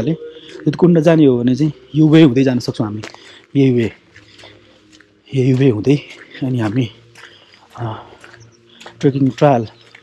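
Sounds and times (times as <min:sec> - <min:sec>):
man speaking: 0:00.0 - 0:04.0, 0:05.3 - 0:07.1, 0:07.7 - 0:08.2, 0:08.9 - 0:09.8.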